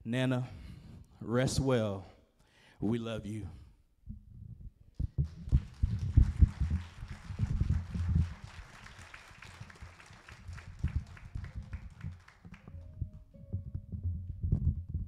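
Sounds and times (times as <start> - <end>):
low thumps and knocks: 12.9 - 15.0.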